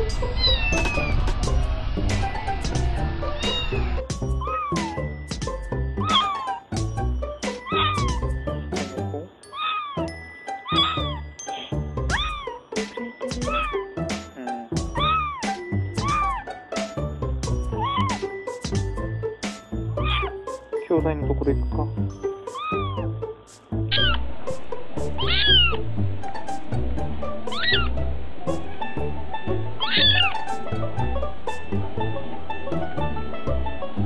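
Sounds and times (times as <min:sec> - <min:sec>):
musical soundtrack: 0:00.0 - 0:34.0
kittens meowing: 0:00.4 - 0:01.2, 0:03.2 - 0:05.1, 0:06.0 - 0:06.7, 0:07.4 - 0:08.4, 0:09.5 - 0:11.2, 0:12.1 - 0:12.6, 0:13.4 - 0:13.9, 0:14.9 - 0:16.5, 0:17.7 - 0:18.3, 0:20.0 - 0:20.4, 0:22.5 - 0:23.2, 0:23.9 - 0:24.2, 0:25.2 - 0:25.8, 0:27.5 - 0:27.9, 0:29.8 - 0:30.4.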